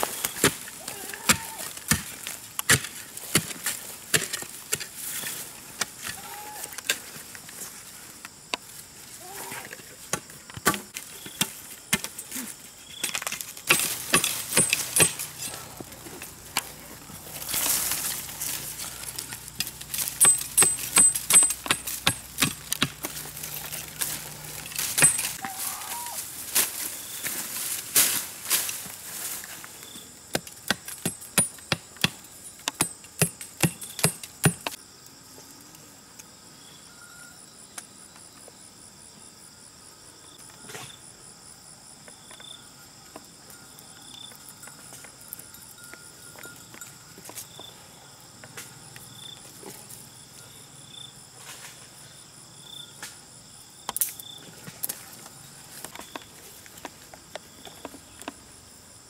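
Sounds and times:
metal blade digging dirt: 0.1 - 6.3, 11.2 - 25.8.

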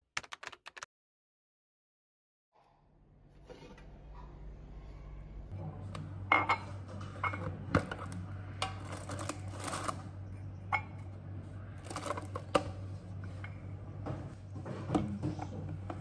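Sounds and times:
steady low hum: 2.8 - 16.0.

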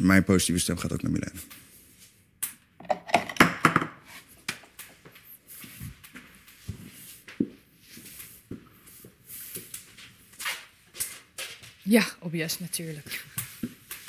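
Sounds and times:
rustling and handling noises: 4.0 - 14.0.

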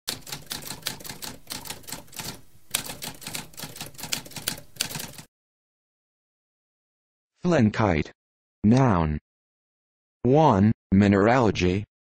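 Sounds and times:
typewriter typing: 0.1 - 5.3.

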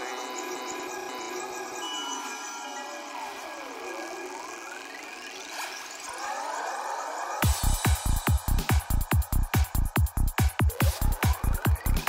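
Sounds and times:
psychedelic trance synth tones: 0.0 - 12.0.

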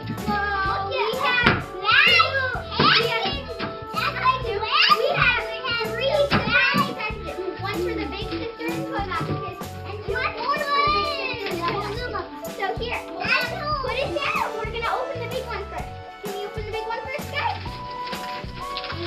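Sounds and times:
children's voices: 0.0 - 17.8
music with steady beat: 0.0 - 19.0.

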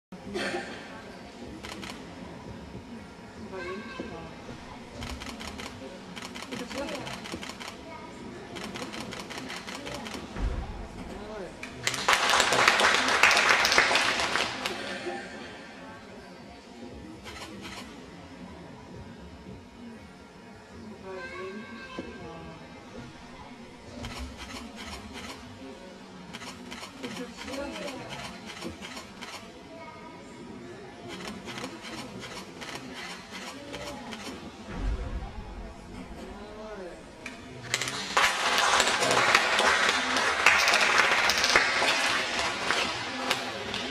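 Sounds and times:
murmur of voices: 0.1 - 43.9
applause: 11.8 - 15.0, 37.8 - 43.9.

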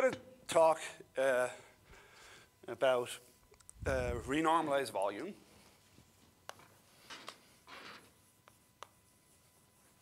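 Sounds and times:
chalk scratching on chalkboard: 8.1 - 10.0
chalk tapping on board: 8.4 - 9.0.

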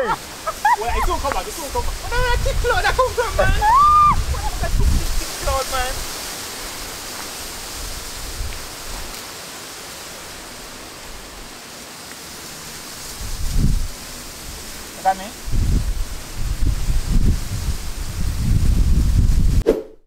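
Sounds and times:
wind buffeting microphone: 0.0 - 9.1, 13.0 - 14.8, 15.4 - 19.6
steady outdoor hiss: 0.0 - 19.6.

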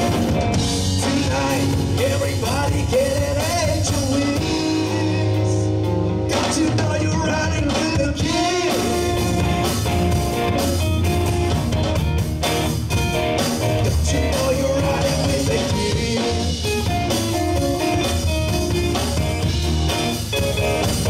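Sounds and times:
drum kit beat: 0.0 - 21.0
electric bass: 0.0 - 21.0
electric guitars: 0.0 - 21.0.

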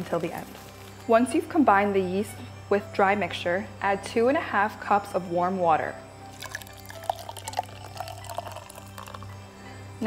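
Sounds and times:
small splashes and drips: 6.3 - 9.4
water poured into metal bowl: 6.3 - 9.4.

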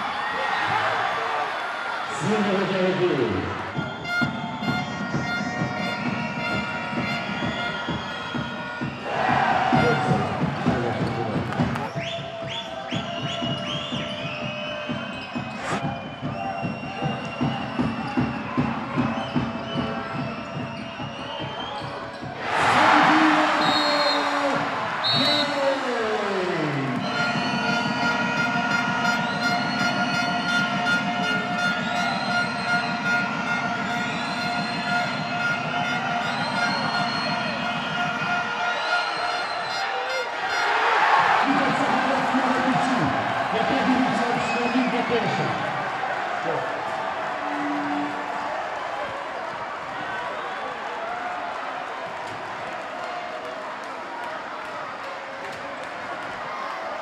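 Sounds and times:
arena crowd noise: 0.0 - 57.0
sneakers squeaking on floor: 9.6 - 22.4.

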